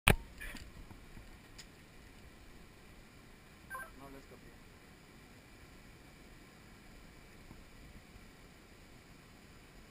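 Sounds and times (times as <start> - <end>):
faint steady hiss: 0.1 - 9.9
high ringing tone: 3.7 - 4.0.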